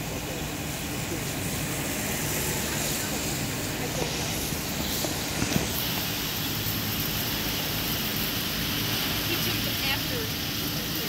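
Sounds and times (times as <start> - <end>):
steady rushing outdoor noise: 0.0 - 11.0.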